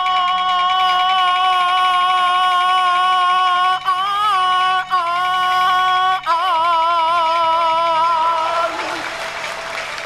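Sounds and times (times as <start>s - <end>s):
opera accompaniment: 0.0s - 10.0s.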